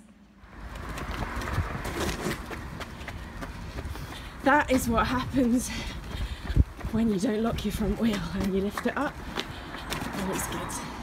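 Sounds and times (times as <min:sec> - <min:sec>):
stroller wheels rolling: 0:00.4 - 0:11.0.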